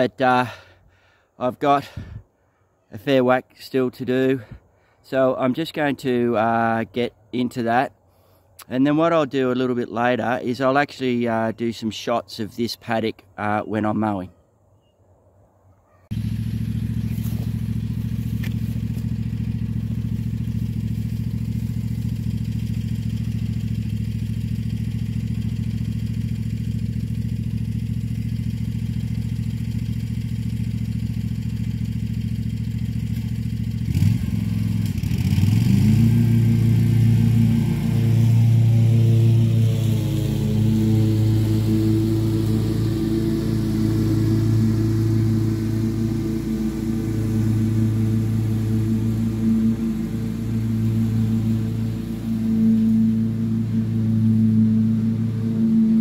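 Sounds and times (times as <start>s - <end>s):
ride-on mower engine running: 16.1s - 56.0s.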